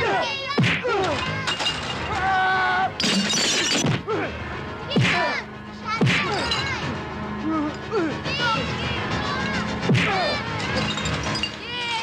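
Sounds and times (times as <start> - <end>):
glass breaking: 1.4 - 2.2, 3.0 - 4.0, 10.6 - 11.8
dramatic fight music: 3.8 - 9.1, 9.7 - 10.6.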